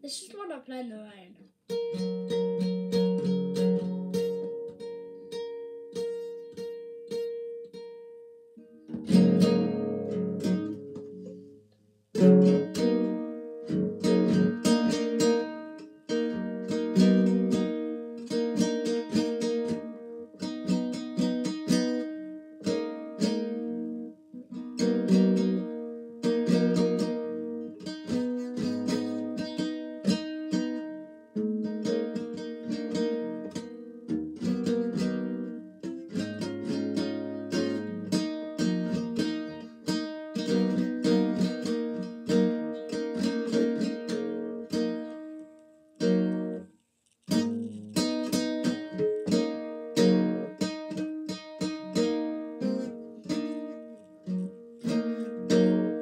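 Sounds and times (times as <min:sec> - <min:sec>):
nylon-string guitar playing: 0:00.0 - 0:56.0.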